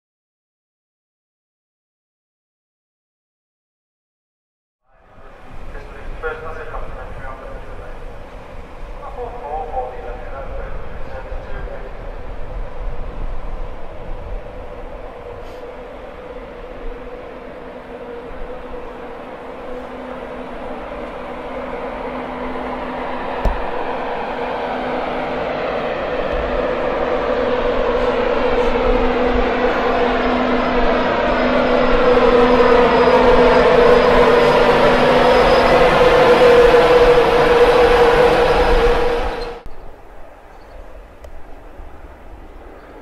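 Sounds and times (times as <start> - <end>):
electric train approaching: 4.9 - 43.0.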